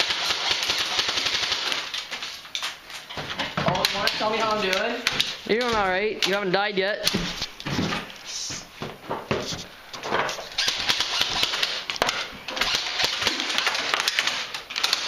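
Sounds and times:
rustling and scuffing on wooden boards: 0:02.1 - 0:06.0, 0:07.1 - 0:10.6
sharp clicks and knocks: 0:09.1 - 0:15.0.

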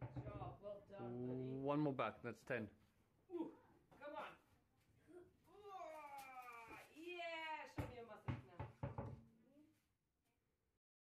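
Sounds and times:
child's straining voice: 0:05.5 - 0:06.9.

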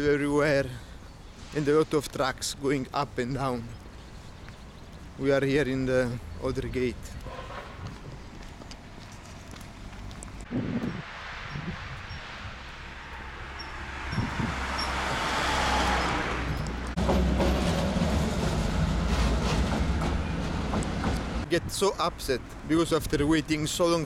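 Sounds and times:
low rumble of traffic: 0:00.0 - 0:24.0
truck driving past: 0:11.0 - 0:21.5
tram passing: 0:11.0 - 0:21.6.

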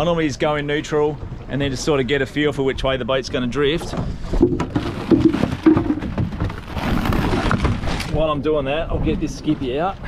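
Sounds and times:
handling noise with knocks: 0:03.9 - 0:08.1.

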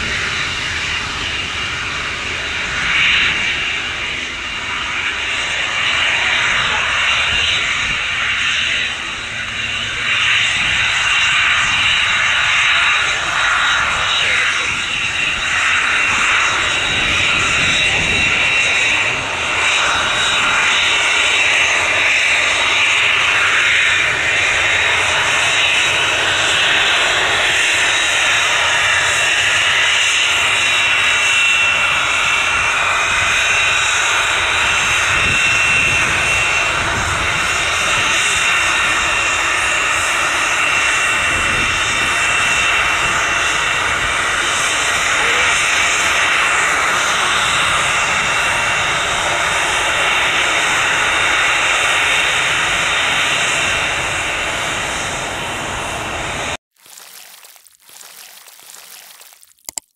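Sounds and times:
jet engine whine: 0:00.0 - 0:56.6.

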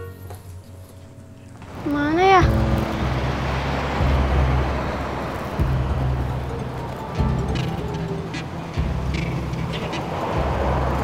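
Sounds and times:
low hum: 0:00.0 - 0:11.0
cars driving past: 0:01.2 - 0:11.0.

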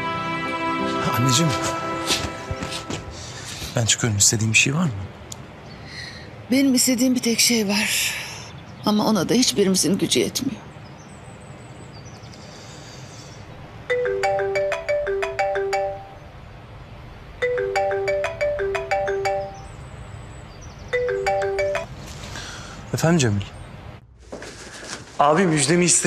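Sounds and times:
phone ringtone melody: 0:13.9 - 0:16.2, 0:17.4 - 0:19.7, 0:20.9 - 0:22.0.

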